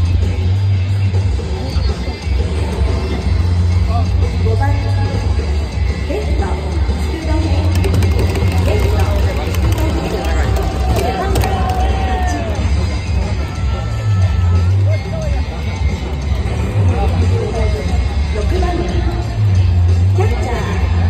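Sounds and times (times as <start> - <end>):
ballpark music over loudspeakers: 0.0 - 21.0
crowd voices: 0.0 - 21.0.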